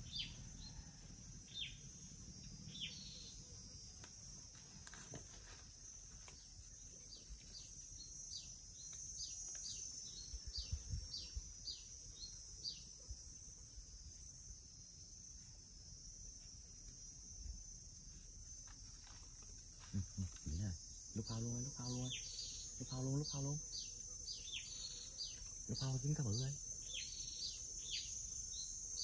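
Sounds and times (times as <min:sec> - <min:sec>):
bird chirping: 0:00.0 - 0:03.6, 0:19.9 - 0:29.0
crickets droning: 0:00.0 - 0:29.0.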